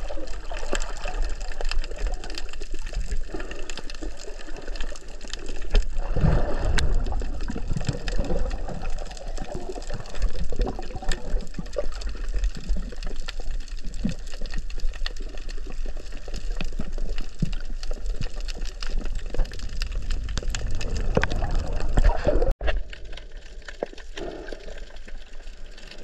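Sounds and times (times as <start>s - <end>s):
low underwater rumble: 0.0s - 26.0s
muffled underwater water rush: 0.0s - 26.0s
small clicks and crackles: 0.0s - 26.0s.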